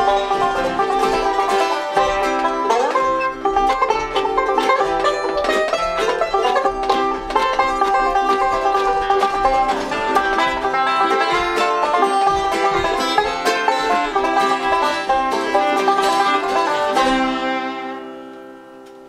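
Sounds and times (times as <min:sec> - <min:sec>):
acoustic guitar: 0:00.0 - 0:19.0
banjo: 0:00.0 - 0:19.0
fiddle: 0:00.0 - 0:19.0
mandolin: 0:00.0 - 0:19.0.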